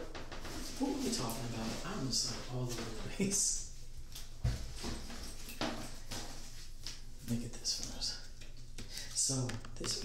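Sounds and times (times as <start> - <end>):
man talking: 0.8 - 3.7, 9.2 - 10.0.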